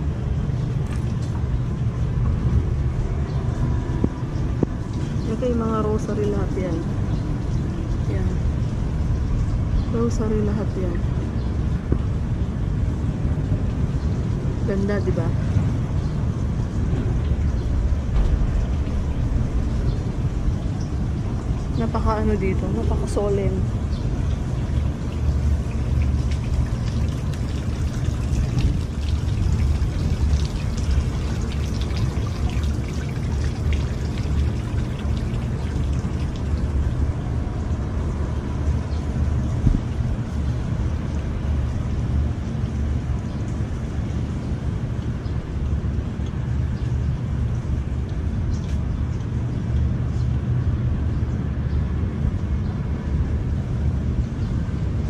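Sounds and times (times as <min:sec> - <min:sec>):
heavy low rumble: 0:00.0 - 0:55.0
fountain water splashing: 0:16.3 - 0:45.1.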